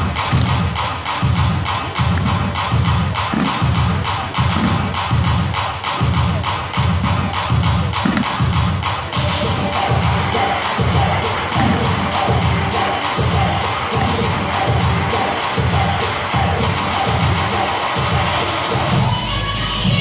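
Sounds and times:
loud dance music: 0.0 - 20.0
crowd cheering: 9.1 - 20.0.

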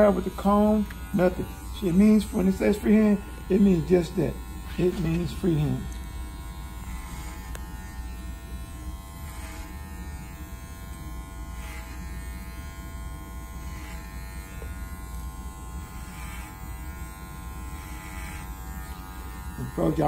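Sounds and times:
electric hair clipper buzzing: 0.0 - 20.0.

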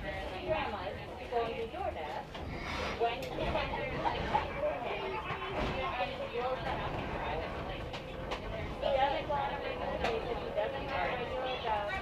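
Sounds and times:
railway car rumble: 0.0 - 12.0.

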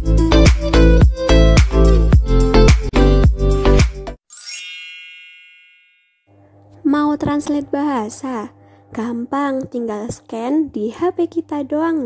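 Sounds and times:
bright bell-like ding: 4.3 - 6.3.

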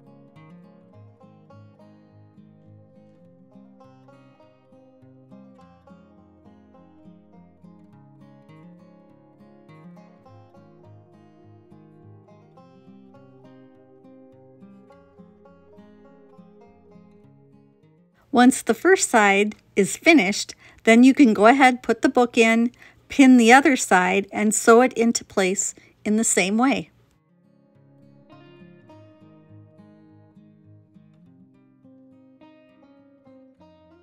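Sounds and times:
plucked acoustic guitar music: 0.0 - 25.5, 26.1 - 34.0.

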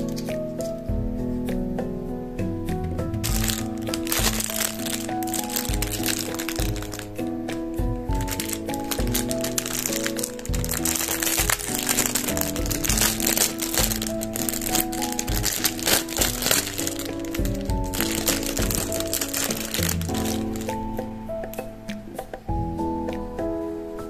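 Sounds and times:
background music: 0.0 - 24.0
plastic bag crinkling: 3.2 - 7.2, 8.0 - 21.0.

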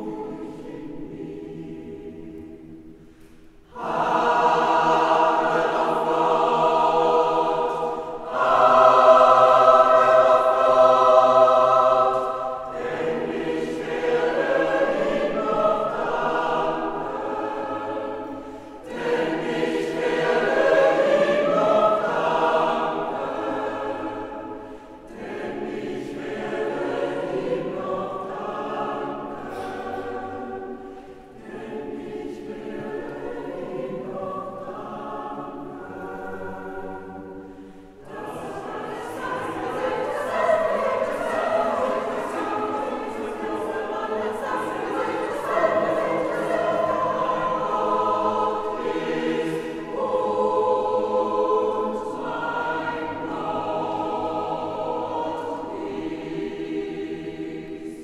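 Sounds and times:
choir singing a cappella: 0.0 - 58.0.

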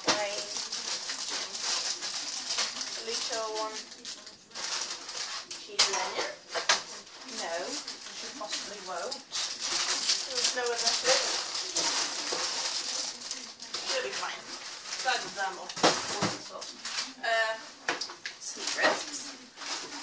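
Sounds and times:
paper bag rustling: 0.0 - 17.7, 18.4 - 20.0.

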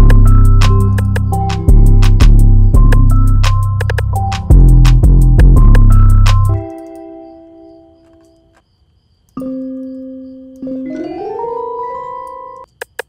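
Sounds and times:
trap beat drums: 0.0 - 6.6
synth keyboard chords: 0.0 - 8.3, 9.4 - 12.7.

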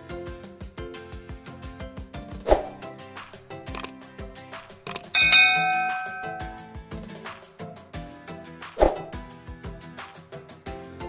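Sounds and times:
background music with steady beat: 0.0 - 11.0
bell chime: 5.2 - 6.8.

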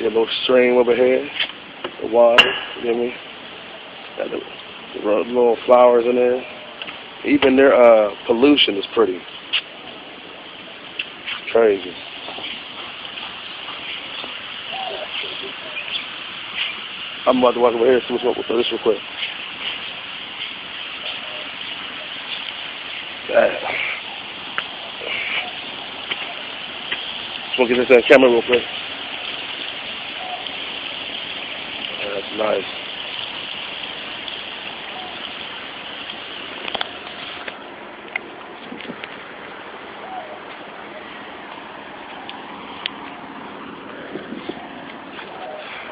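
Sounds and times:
running water hiss: 0.0 - 45.9.

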